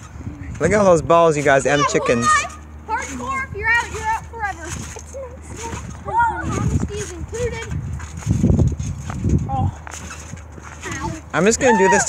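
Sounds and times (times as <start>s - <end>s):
balls bouncing on trampoline: 0.0s - 12.0s
feet thudding on trampoline: 0.0s - 12.0s.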